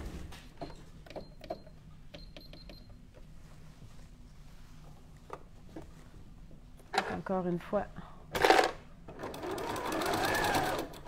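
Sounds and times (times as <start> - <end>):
electric sewing machine sewing: 8.4 - 11.0.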